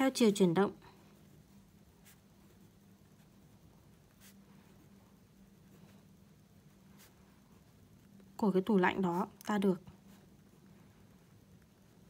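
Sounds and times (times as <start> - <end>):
low steady hum: 0.0 - 12.0
pen scratching on paper: 0.2 - 5.8.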